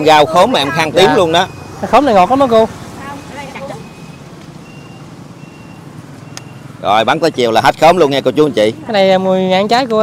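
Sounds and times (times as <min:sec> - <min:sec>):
traffic engine rumble: 0:00.0 - 0:10.0
vehicle warning beeper: 0:00.8 - 0:01.8, 0:03.1 - 0:06.8.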